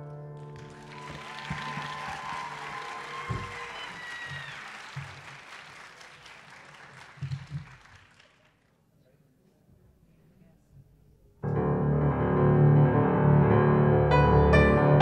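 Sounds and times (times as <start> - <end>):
audience applause: 0.3 - 8.7.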